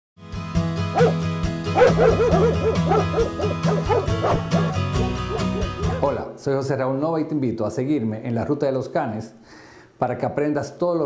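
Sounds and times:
theme music with steady beat: 0.3s - 6.1s
dog barking: 0.9s - 1.2s, 1.8s - 6.1s.

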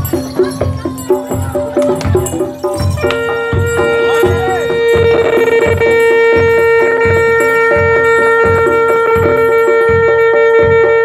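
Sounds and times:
drums and gongs beat: 0.0s - 11.0s.

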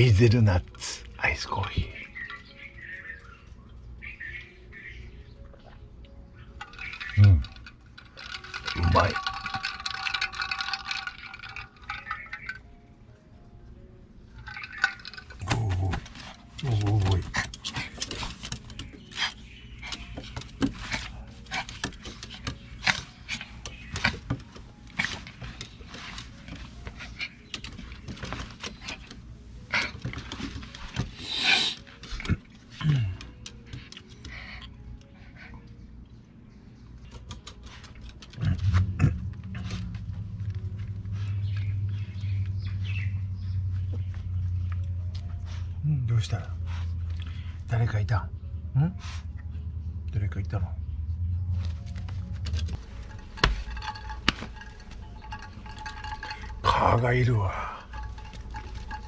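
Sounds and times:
ice cubes clinking in metal tumbler: 6.6s - 12.6s, 14.4s - 15.7s, 52.8s - 59.0s
dog growling: 38.4s - 41.0s.

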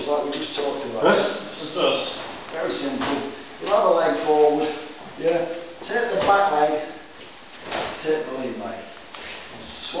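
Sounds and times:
man speaking: 0.0s - 7.1s, 8.0s - 9.0s, 9.6s - 10.0s.

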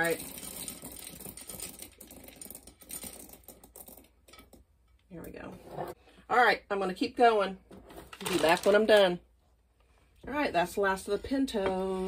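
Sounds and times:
dry beans poured into glass jar: 0.0s - 4.1s.

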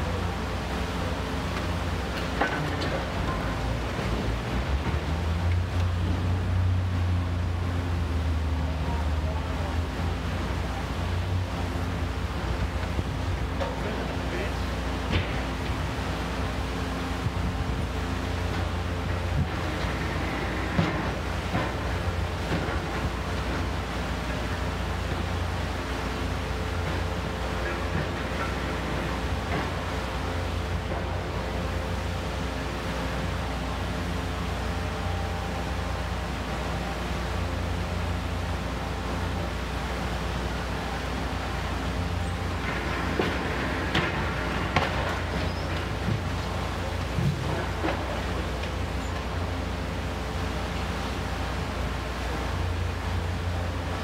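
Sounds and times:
excavator engine droning: 0.0s - 54.0s.

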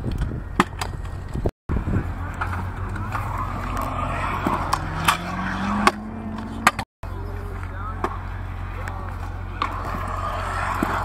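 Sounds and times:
scooter wheels rolling on concrete: 0.0s - 11.0s.

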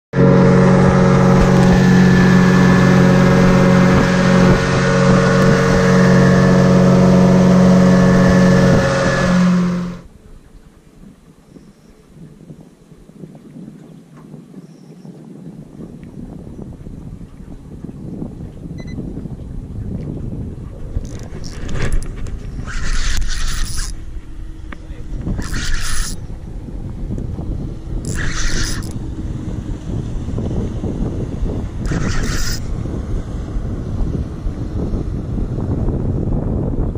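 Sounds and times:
boat engine running: 0.0s - 36.9s
hull and wake rushing: 0.1s - 36.9s
wind and water rush: 0.2s - 36.9s.

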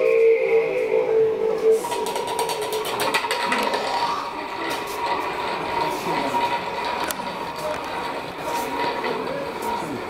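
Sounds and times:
spinning top humming on stone: 1.8s - 10.0s.

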